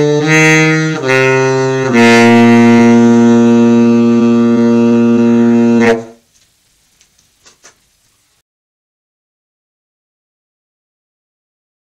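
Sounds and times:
tenor saxophone playing: 0:00.0 - 0:06.2.

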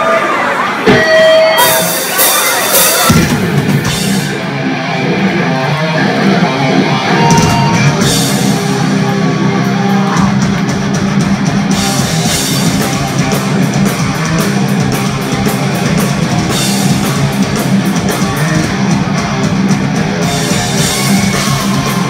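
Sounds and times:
live heavy metal band playing: 0:00.0 - 0:22.0.

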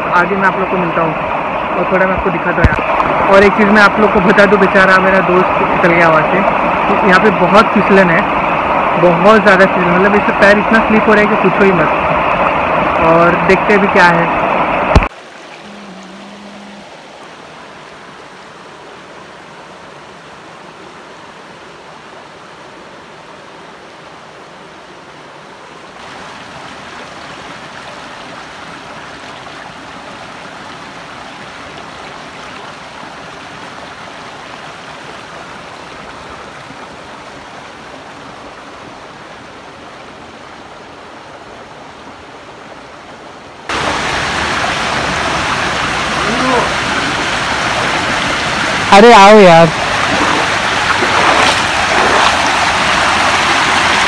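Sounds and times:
stream rushing over stones: 0:00.0 - 0:54.0.

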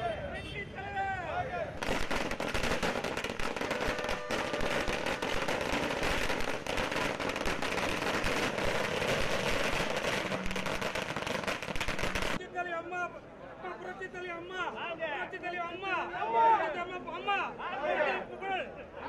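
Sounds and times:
firecrackers crackling: 0:01.8 - 0:12.4.

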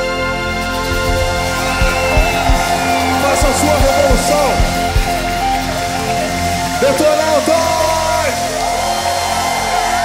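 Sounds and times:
electric guitar with gliding notes: 0:00.0 - 0:09.4
live rock band playing: 0:00.1 - 0:07.2.

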